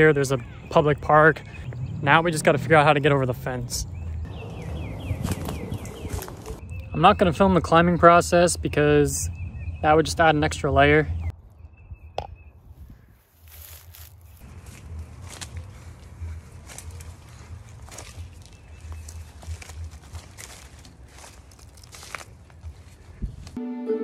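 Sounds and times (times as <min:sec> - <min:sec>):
rustling leafy branches: 0:04.4 - 0:06.6, 0:13.2 - 0:23.6.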